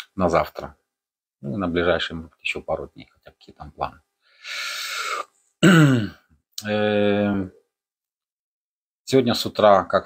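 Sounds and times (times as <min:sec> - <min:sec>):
man breathing: 0:04.2 - 0:05.5.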